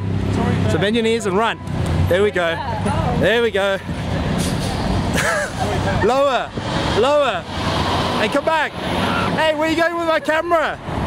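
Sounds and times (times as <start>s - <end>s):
busy road traffic rumble: 0.0s - 11.0s.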